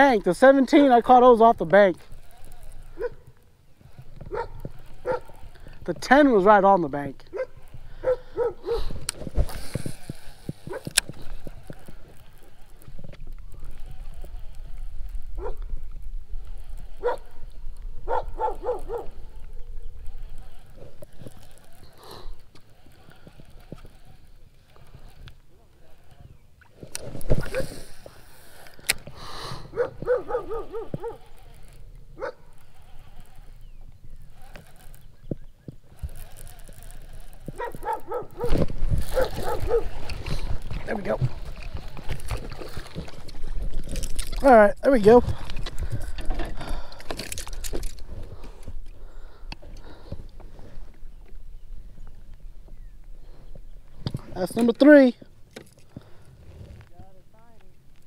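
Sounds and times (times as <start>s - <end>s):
fishing reel clicks: 0.0s - 6.7s, 7.6s - 18.0s, 18.7s - 50.0s
dog barking: 3.0s - 3.2s, 4.3s - 5.3s, 7.3s - 8.9s, 17.0s - 17.3s, 18.1s - 19.1s, 29.7s - 31.2s, 37.6s - 38.6s, 39.2s - 39.9s
wind on microphone: 7.1s - 25.3s, 26.0s - 44.4s, 45.1s - 54.4s.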